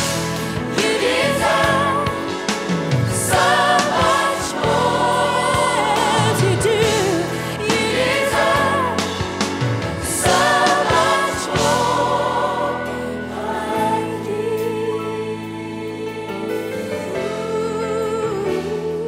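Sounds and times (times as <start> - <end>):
band with electric guitar: 0.0 - 16.0
choir singing: 0.0 - 19.0
woman singing lead vocal: 0.6 - 9.5, 10.1 - 19.0.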